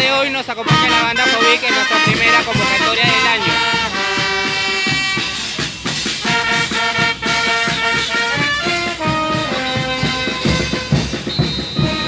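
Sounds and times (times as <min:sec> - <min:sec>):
brass band playing dance tune: 0:00.0 - 0:12.0
steady drum beat: 0:00.0 - 0:12.0.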